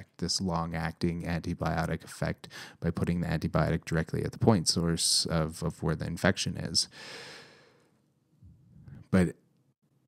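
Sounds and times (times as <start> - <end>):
man speaking: 0.0 - 7.0, 9.0 - 9.4
faint breath: 2.5 - 2.8, 6.9 - 8.0
man exhaling into microphone: 7.0 - 7.8.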